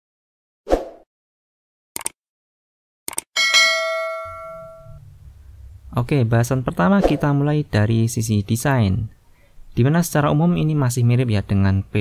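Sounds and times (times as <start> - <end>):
bright bell ding: 3.4 - 5.0.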